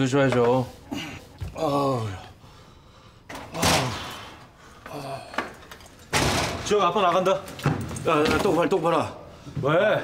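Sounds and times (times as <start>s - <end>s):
interior door banging open: 6.1s - 6.9s.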